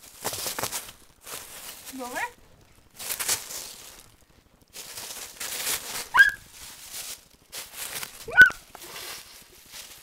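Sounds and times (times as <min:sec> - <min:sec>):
rustling of plush toys and fabric: 0:00.0 - 0:10.0
ferret squeaking: 0:06.1 - 0:06.5, 0:08.3 - 0:08.6.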